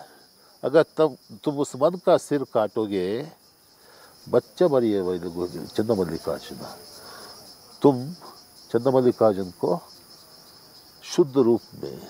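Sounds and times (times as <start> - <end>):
high-pitched insect chorus: 0.0 - 12.0
man talking: 4.3 - 7.0, 7.8 - 9.9, 11.0 - 12.0.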